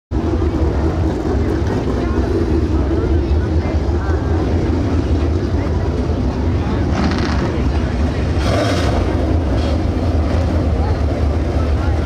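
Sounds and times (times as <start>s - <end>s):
race car engines droning: 0.1s - 12.0s.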